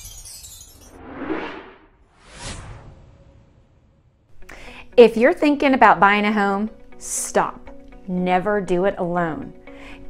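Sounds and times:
whoosh sound effect: 0.9 - 4.1.

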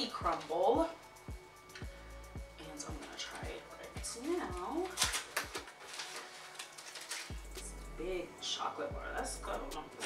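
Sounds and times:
plastic wrapper tearing and crinkling: 4.4 - 7.9.

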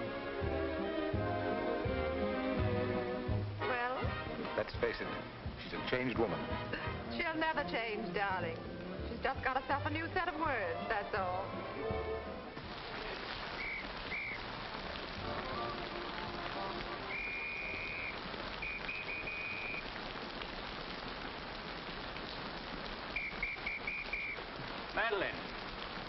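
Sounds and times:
steady rain: 0.0 - 26.0
high whistle blasts: 13.6 - 14.4, 17.0 - 19.9, 23.1 - 24.4.

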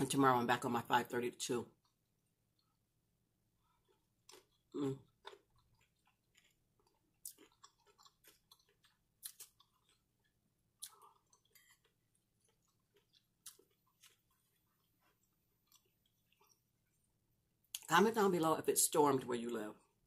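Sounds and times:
close chewing and wet mouth sounds: 3.5 - 17.9.

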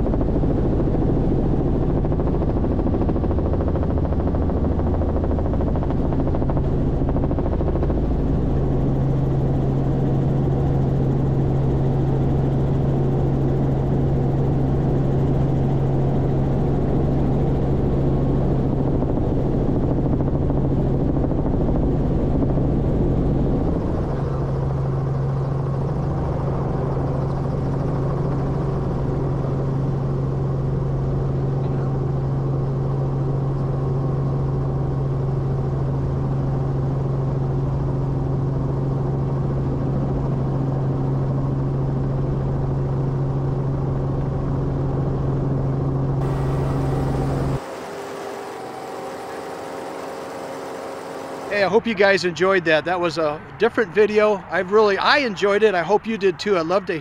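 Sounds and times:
helicopter engine and rotor drone: 0.0 - 57.0.

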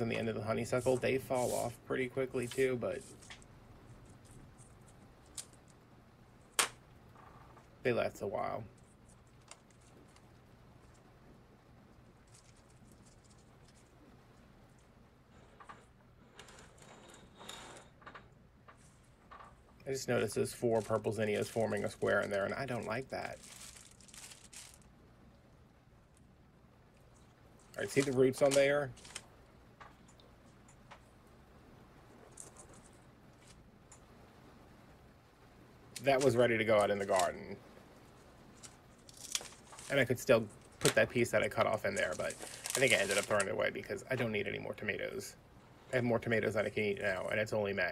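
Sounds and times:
faint room hum: 0.0 - 47.9
flower stems rustling and clicking: 2.4 - 5.8, 8.7 - 11.0, 12.2 - 14.0, 14.7 - 24.9, 26.9 - 31.1, 32.2 - 34.1, 36.0 - 44.3.

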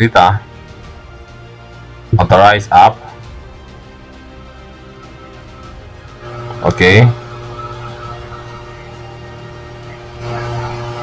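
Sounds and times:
faint steady tones: 0.0 - 11.0
loud hissy noise: 0.0 - 11.0.

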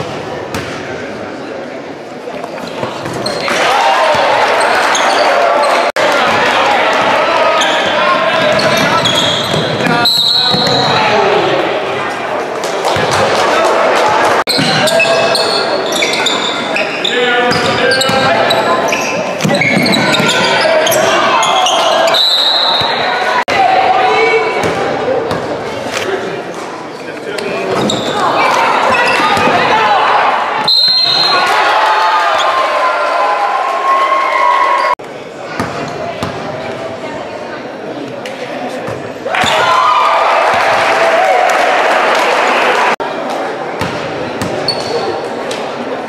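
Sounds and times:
sneakers squeaking: 2.2 - 6.4, 7.3 - 11.2, 14.5 - 23.4, 26.9 - 29.7, 35.5 - 36.5, 43.8 - 45.3
spectators yelling and cheering: 3.1 - 25.3, 27.5 - 35.0, 39.2 - 43.6.

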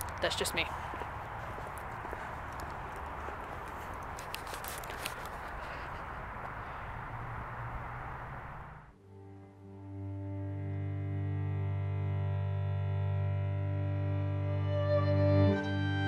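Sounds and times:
footsteps on pathway: 0.0 - 6.9.

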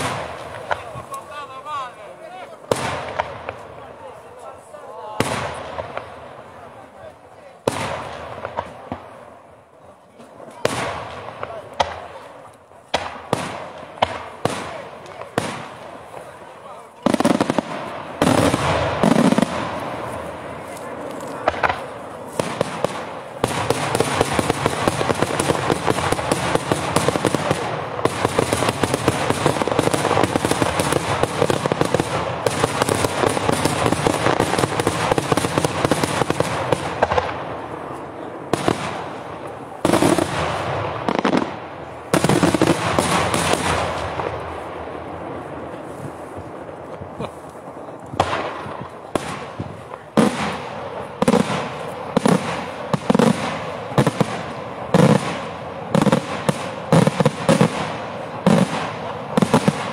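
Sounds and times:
firework bangs: 0.0 - 59.9
fireworks crackling: 0.0 - 59.9.

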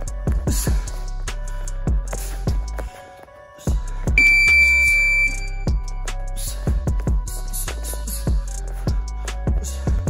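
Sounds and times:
background music with drum beat: 0.0 - 2.9, 3.6 - 10.0
high electronic beep: 4.2 - 5.8.

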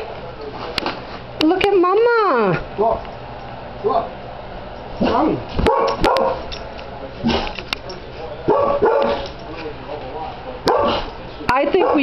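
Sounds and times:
dog barking and whining: 5.0 - 6.6, 8.5 - 9.3, 10.7 - 12.0.

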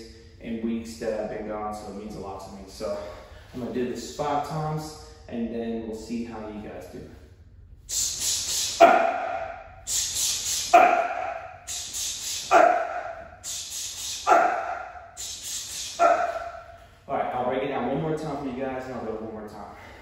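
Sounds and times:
man shouting kiai: 7.9 - 16.6
man hissing breaths: 7.9 - 16.9.

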